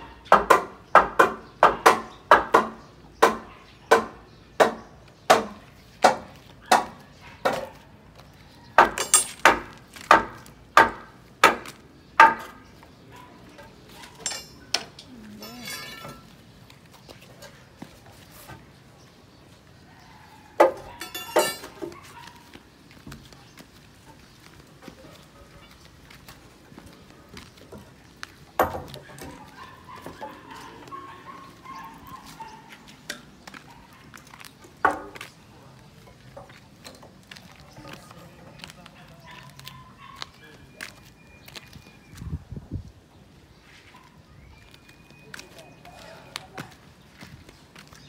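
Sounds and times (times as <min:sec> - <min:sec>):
faint voices: 0:13.0 - 0:21.6, 0:35.2 - 0:41.6, 0:45.0 - 0:47.9
ringing metallic clang: 0:14.2 - 0:16.3, 0:21.0 - 0:21.8.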